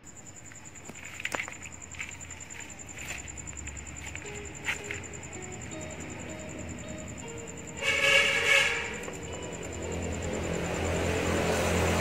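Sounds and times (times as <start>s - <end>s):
soft background music: 2.0s - 12.0s
loud horn-like blare: 7.8s - 9.1s.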